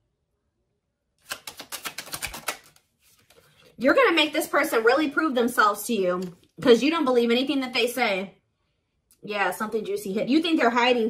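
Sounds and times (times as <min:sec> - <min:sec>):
cards being shuffled: 0:01.2 - 0:03.8.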